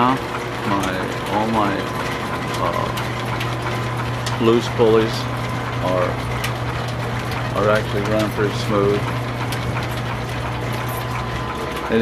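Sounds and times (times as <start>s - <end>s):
line shaft low hum: 0.0s - 12.0s.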